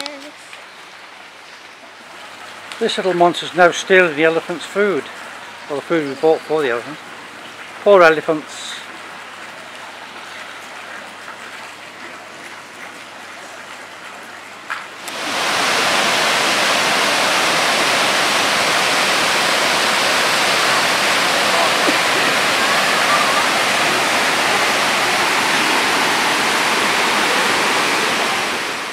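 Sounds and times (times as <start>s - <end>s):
waterfall rushing over boulders: 2.7s - 7.1s, 15.0s - 28.9s.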